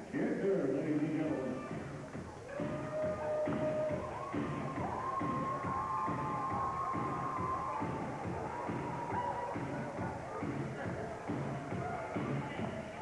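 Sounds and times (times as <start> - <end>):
entrance music over loudspeakers: 0.0 - 13.0.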